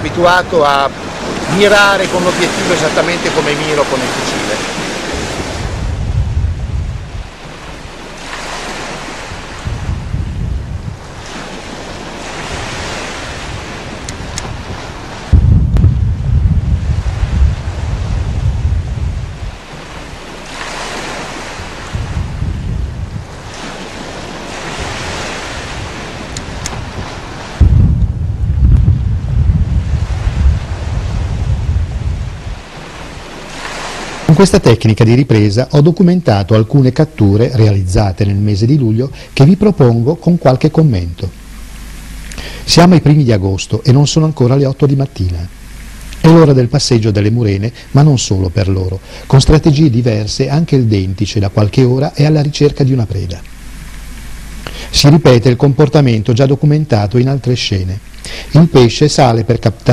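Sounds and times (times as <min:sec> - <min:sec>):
heavy low underwater rumble: 0:00.0 - 0:59.9
underwater rushing hiss: 0:07.0 - 0:15.6, 0:16.8 - 0:27.8, 0:29.8 - 0:34.6, 0:41.0 - 0:42.9, 0:48.8 - 0:49.4, 0:53.2 - 0:55.2, 0:57.9 - 0:58.8.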